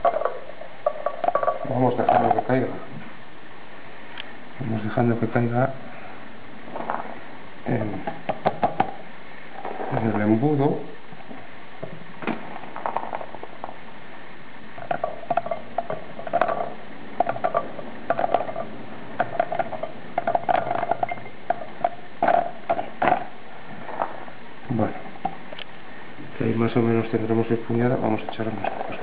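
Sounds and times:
berries clicking into glass bottle: 0:14.8 - 0:23.3.

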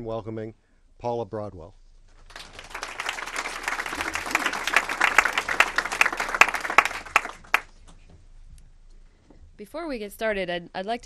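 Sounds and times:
audience applauding: 0:02.3 - 0:07.7.

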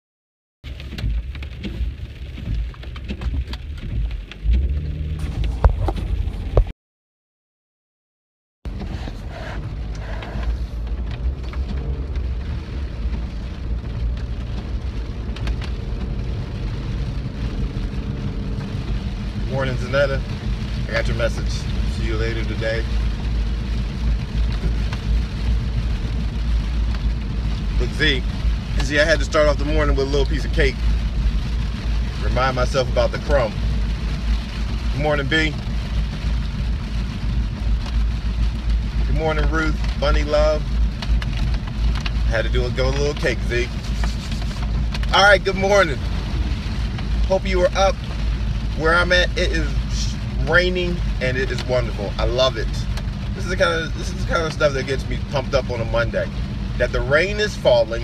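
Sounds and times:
car cabin road rumble: 0:00.6 - 0:06.7, 0:08.7 - 0:58.0
person speaking: 0:42.3 - 0:46.0, 0:48.8 - 0:52.8.

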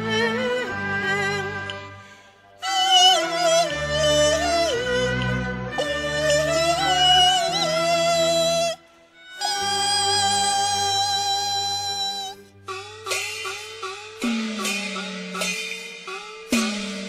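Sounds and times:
plucked or struck notes: 0:00.0 - 0:17.0
heavy struck accent: 0:12.6 - 0:17.0.

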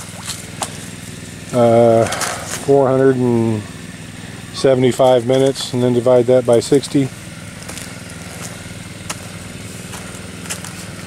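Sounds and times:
small gasoline pump engine running: 0:00.0 - 0:11.0.

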